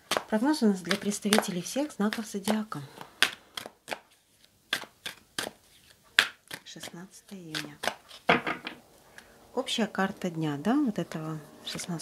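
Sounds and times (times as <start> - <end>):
cards snapping and clicking: 0.0 - 8.3.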